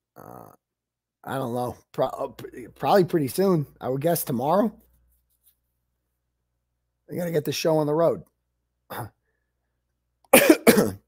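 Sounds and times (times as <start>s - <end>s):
man clearing his throat: 10.3s - 11.0s.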